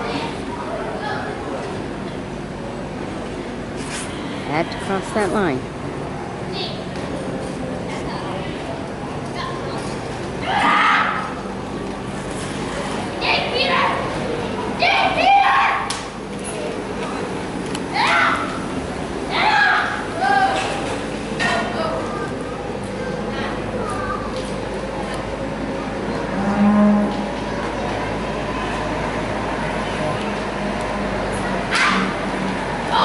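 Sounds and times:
arena background noise: 0:00.0 - 0:33.0
children shouting: 0:10.4 - 0:11.5, 0:13.2 - 0:16.0, 0:17.9 - 0:20.8, 0:31.3 - 0:33.0
steer mooing: 0:26.2 - 0:27.4.

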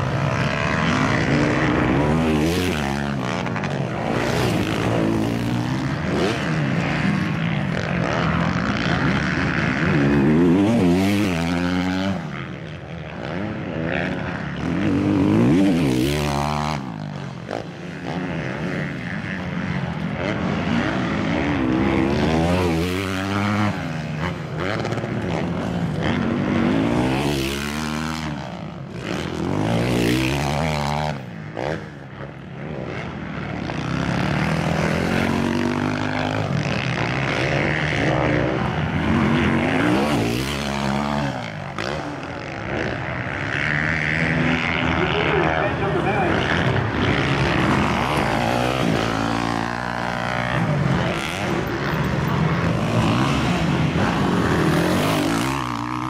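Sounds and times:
motocross bikes revving: 0:00.0 - 0:56.0.

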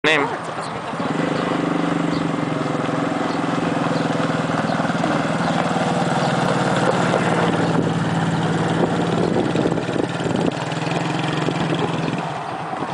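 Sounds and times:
quad engine driving past: 0:00.6 - 0:12.9.

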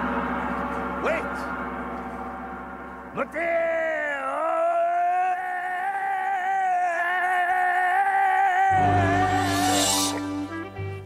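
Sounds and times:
band music with heavy bass: 0:08.7 - 0:11.0.

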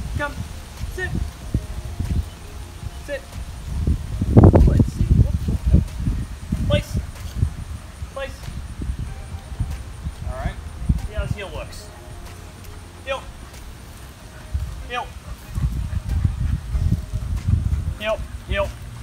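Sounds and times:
low thumps: 0:00.0 - 0:19.0
footsteps on concrete: 0:05.2 - 0:18.0.

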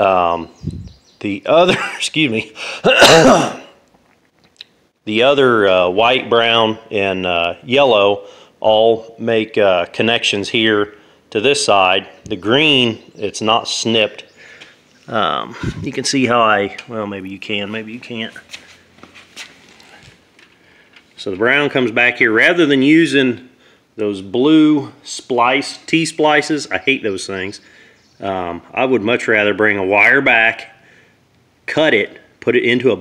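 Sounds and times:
man clearing his throat: 0:02.6 - 0:03.8
footsteps on concrete: 0:18.0 - 0:20.6.

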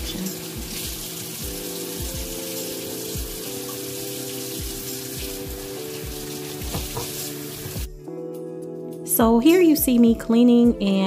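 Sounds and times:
water splashing over vegetables: 0:00.0 - 0:07.9
soft background music: 0:00.0 - 0:11.0
tap running into metal sink: 0:06.5 - 0:07.8.

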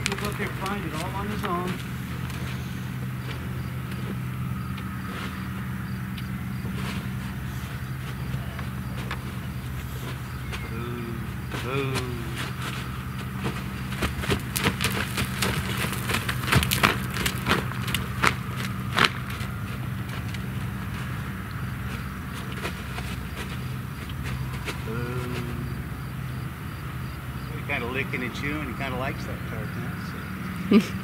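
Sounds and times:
low mechanical hum: 0:00.0 - 0:31.0
sharp irregular clicks and crackles: 0:14.0 - 0:20.4.

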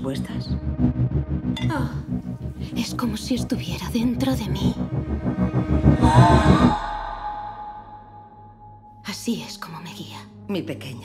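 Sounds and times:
low pulsing trailer music: 0:00.0 - 0:11.0.

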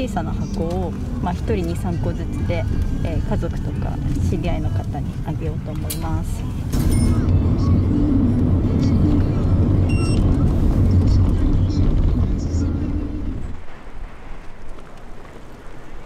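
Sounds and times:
car engine and road rumble: 0:00.0 - 0:16.0
street ambience: 0:00.0 - 0:16.0.

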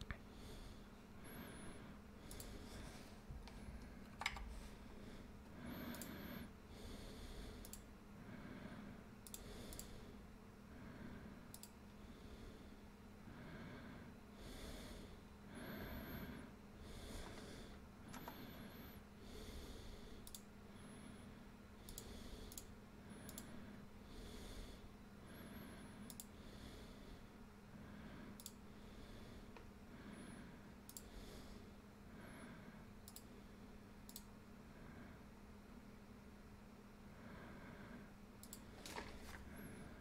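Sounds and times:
soft breathing: 0:00.0 - 0:35.6, 0:37.0 - 0:40.0
faint steady hum: 0:00.0 - 0:40.0
computer mouse clicks: 0:02.2 - 0:02.6, 0:03.5 - 0:04.5, 0:05.7 - 0:06.4, 0:07.6 - 0:07.9, 0:09.2 - 0:10.0, 0:11.5 - 0:11.8, 0:18.1 - 0:18.4, 0:20.2 - 0:20.5, 0:21.8 - 0:23.6, 0:26.0 - 0:26.3, 0:28.4 - 0:28.6, 0:30.9 - 0:31.1, 0:33.0 - 0:33.3, 0:34.0 - 0:34.3, 0:38.4 - 0:39.4.

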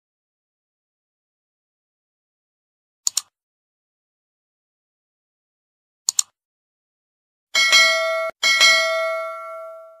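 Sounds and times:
bright ringing bell chime: 0:07.6 - 0:10.0.

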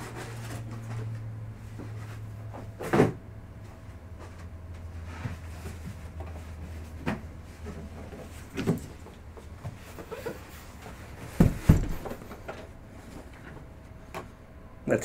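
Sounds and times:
cardboard box knocks: 0:11.4 - 0:12.2.

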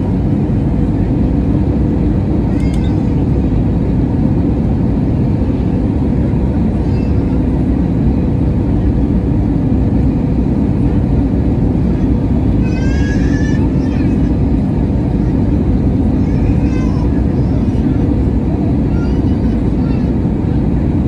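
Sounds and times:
airplane cabin roar: 0:00.0 - 0:21.0.

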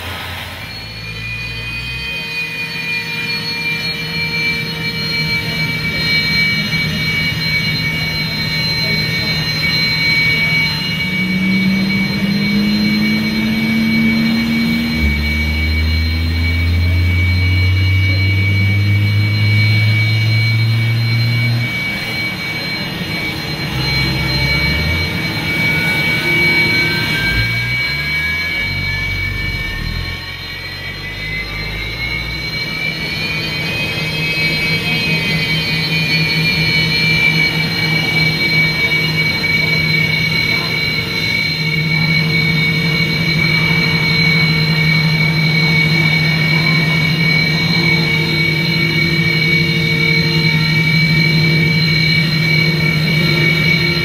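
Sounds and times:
engine spooling up: 0:00.0 - 0:54.0
jet engines whining: 0:00.0 - 0:54.0.

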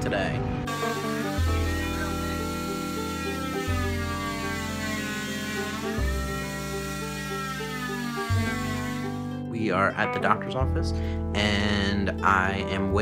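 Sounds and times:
background music with chords: 0:00.0 - 0:13.0
cast saw whining: 0:00.7 - 0:09.4.

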